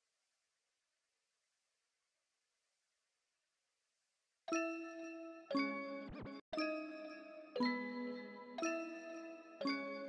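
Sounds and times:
bell-like chords ringing: 0:04.5 - 0:10.0.

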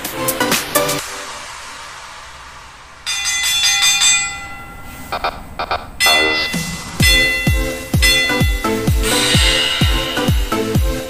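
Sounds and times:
hiss: 0:00.0 - 0:05.2, 0:06.8 - 0:11.0
bright bell-like chime: 0:03.1 - 0:05.1, 0:06.0 - 0:11.0.

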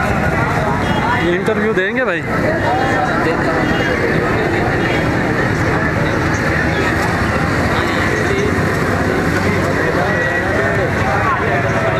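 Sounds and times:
indistinct crowd voices: 0:00.0 - 0:11.9
traffic noise: 0:00.0 - 0:11.9.

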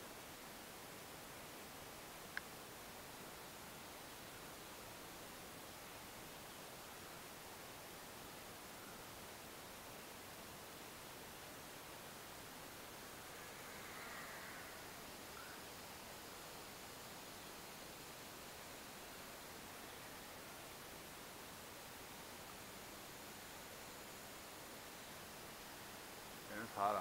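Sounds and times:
faint steady hiss: 0:00.0 - 0:27.0.

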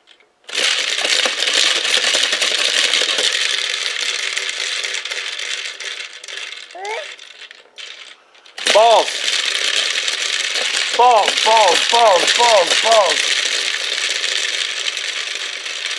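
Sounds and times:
plastic balls rattling in spinning top: 0:00.0 - 0:15.9.

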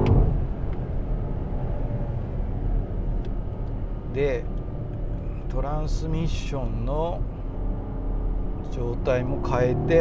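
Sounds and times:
car engine rumble in cabin: 0:00.0 - 0:10.0
road noise: 0:00.0 - 0:10.0.

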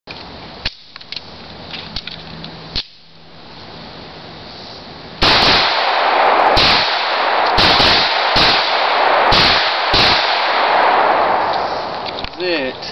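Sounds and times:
pistol shots: 0:05.2 - 0:12.1.

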